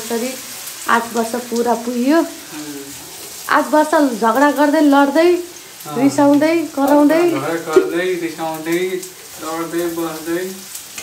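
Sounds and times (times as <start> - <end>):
food sizzling in a wok: 0.0 - 11.0.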